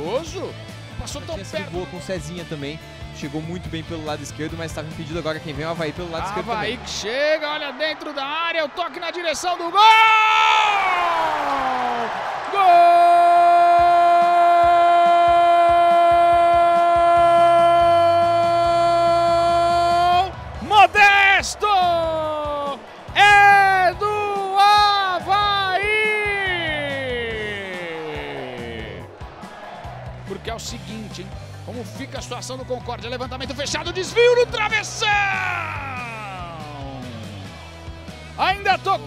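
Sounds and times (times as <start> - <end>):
football commentator shouting: 5.4 - 29.1, 33.2 - 37.2.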